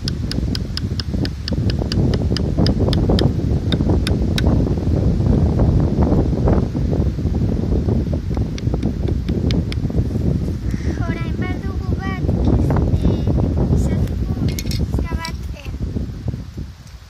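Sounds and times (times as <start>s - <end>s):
rapid sharp high ticks: 0.0s - 4.5s
wind buffeting microphone: 0.0s - 17.0s.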